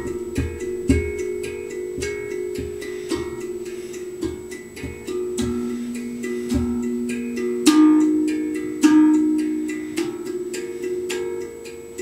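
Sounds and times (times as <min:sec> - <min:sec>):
handpan notes ringing: 0:00.0 - 0:12.0.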